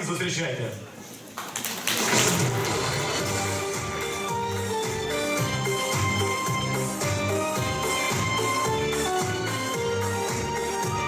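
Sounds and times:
audience applauding: 1.3s - 9.6s.

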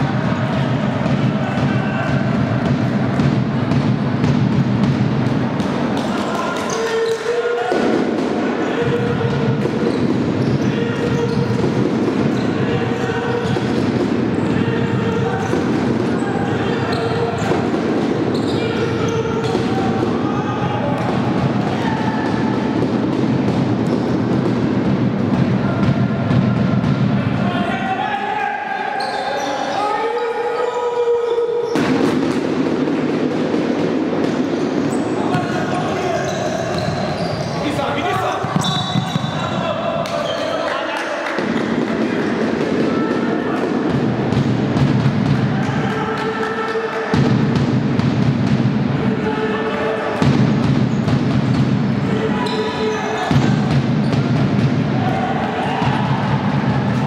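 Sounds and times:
people shouting echoing: 0.0s - 3.2s, 5.7s - 23.6s, 34.8s - 44.4s, 45.3s - 47.4s, 48.9s - 50.5s, 51.9s - 57.0s
ball bouncing on wooden court: 0.3s - 16.3s, 16.9s - 20.2s, 21.0s - 27.2s, 31.7s - 37.6s, 38.4s - 40.2s, 43.6s - 46.3s, 47.1s - 48.8s, 50.2s - 55.2s.

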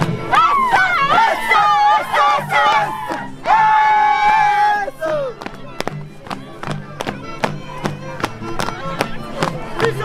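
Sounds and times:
carnival band music: 0.0s - 10.0s
high voices singing and shouting: 0.1s - 5.4s
long held cry: 0.3s - 5.3s.

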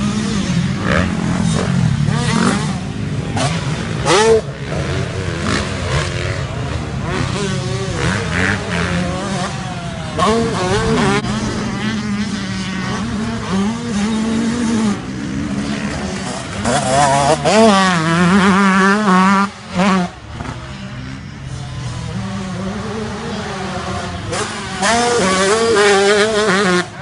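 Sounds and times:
motocross bike engines revving: 0.0s - 27.0s.

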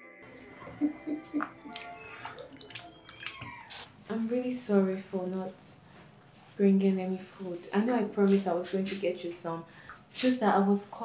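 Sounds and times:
soft background music: 0.0s - 3.8s
water splashing in plastic bowl: 1.4s - 3.9s.

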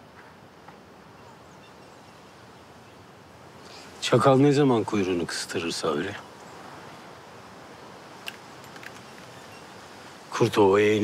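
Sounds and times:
soft steady hiss: 0.0s - 11.0s
faint ticks: 8.2s - 9.4s.

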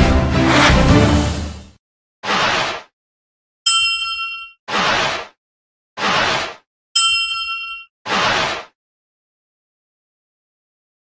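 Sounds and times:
bright bell ding: 3.7s - 4.6s, 7.0s - 7.9s.

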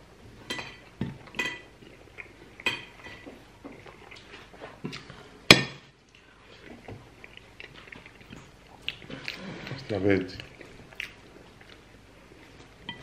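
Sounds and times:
plates and cutlery clinking: 0.4s - 1.7s.

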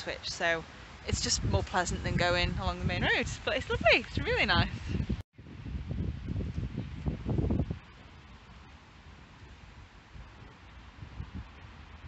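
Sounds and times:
faint outdoor hiss: 0.0s - 12.0s
wind buffeting microphone: 0.0s - 12.0s.

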